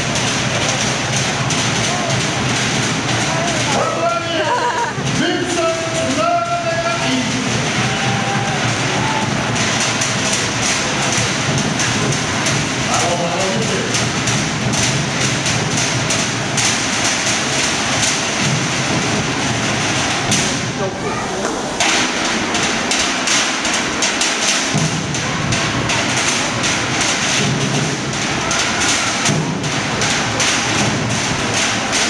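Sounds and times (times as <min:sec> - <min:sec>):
fast steady drumming: 0:00.0 - 0:32.0
noisy crowd: 0:00.0 - 0:32.0
shouted calls: 0:07.6 - 0:11.3.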